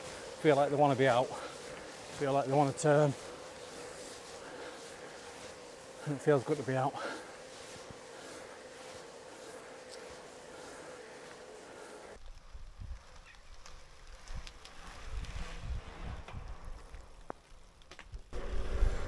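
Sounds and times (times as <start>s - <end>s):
bicycle tyres hissing on tarmac: 0.0s - 19.0s
wind rumble on microphone: 14.0s - 17.1s, 18.2s - 19.0s.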